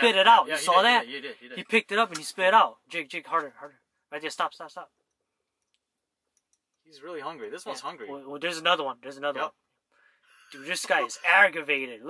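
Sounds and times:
man speaking: 0:00.0 - 0:04.9, 0:06.9 - 0:09.6, 0:10.5 - 0:12.0.

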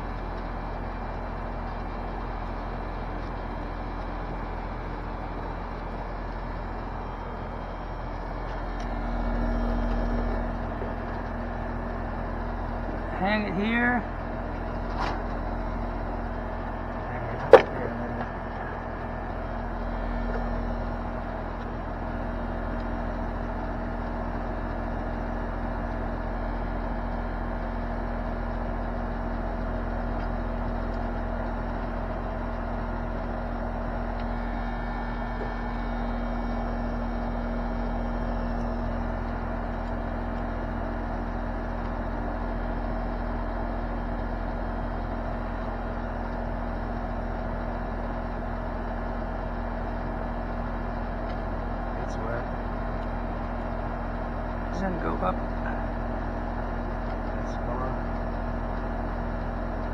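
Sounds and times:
air conditioner unit humming: 0:09.3 - 0:23.9.

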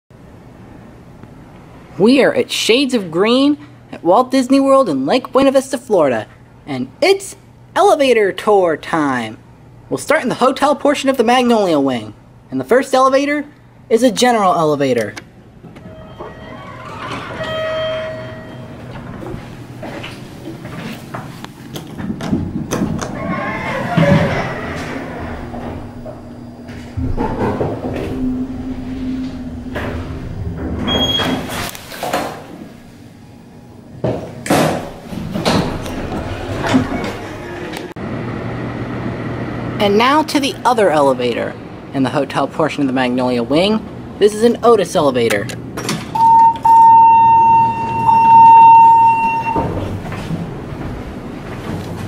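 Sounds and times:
elevator hum: 0:13.9 - 0:52.0
elevator doors sliding: 0:15.1 - 0:33.0, 0:35.0 - 0:38.0, 0:45.8 - 0:52.0
short elevator tones: 0:15.7 - 0:19.6, 0:23.0 - 0:31.7, 0:46.1 - 0:50.3.

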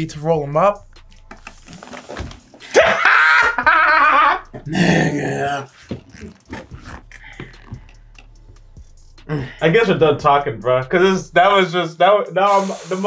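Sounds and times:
men laughing loudly: 0:02.6 - 0:07.8.

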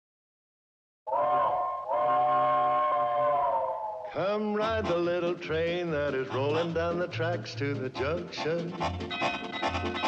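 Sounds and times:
steam locomotive chime whistle: 0:01.1 - 0:03.4.

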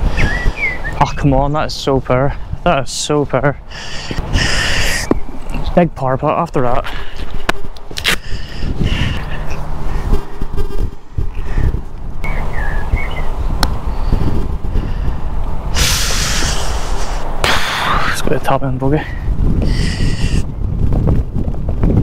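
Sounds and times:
steady low rumble: 0:00.0 - 0:22.0
burst of hiss: 0:15.7 - 0:18.2.

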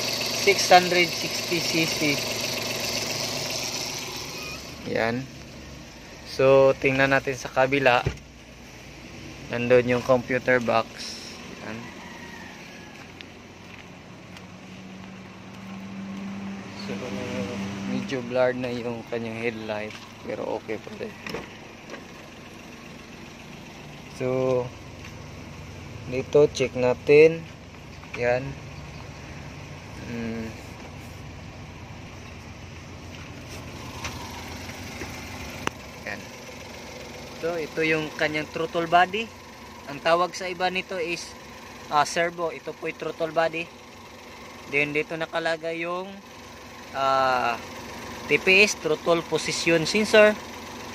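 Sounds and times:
engine idling: 0:00.0 - 0:50.9.

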